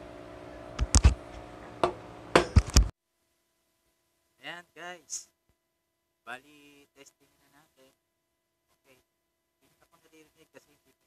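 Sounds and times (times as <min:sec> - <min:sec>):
faint hum: 0:00.0 - 0:02.9
sharp knocks and clicks: 0:00.8 - 0:01.2, 0:01.8 - 0:02.9.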